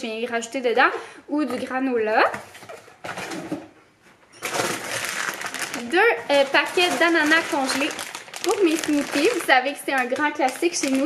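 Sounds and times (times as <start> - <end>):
plastic packaging crinkling: 4.4 - 11.0.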